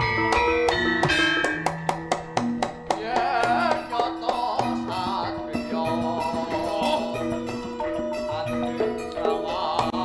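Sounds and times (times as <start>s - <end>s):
metallophone notes: 0.0s - 2.9s, 3.5s - 10.0s
drum strokes: 0.0s - 5.8s.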